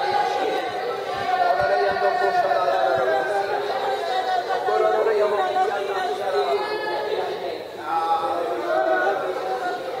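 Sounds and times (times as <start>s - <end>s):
murmur of overlapping voices: 0.0s - 10.0s.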